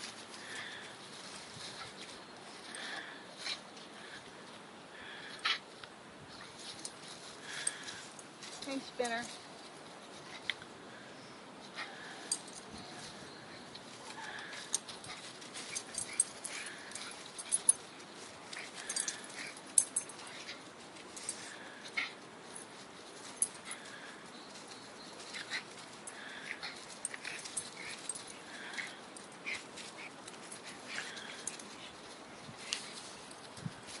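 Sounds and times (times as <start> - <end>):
paws scuffling on leaf litter: 0.0 - 4.5, 6.4 - 10.5, 11.8 - 34.0
dogs play-fighting noises: 0.0 - 34.0.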